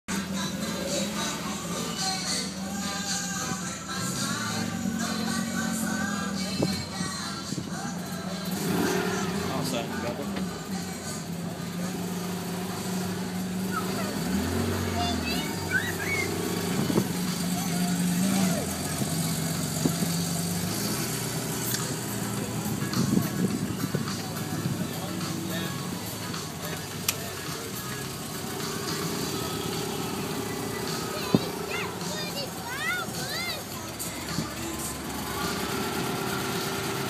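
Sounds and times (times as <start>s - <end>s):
car engine running: 0.1s - 37.0s
crowd chatter: 0.1s - 37.0s
music playing: 0.1s - 37.0s.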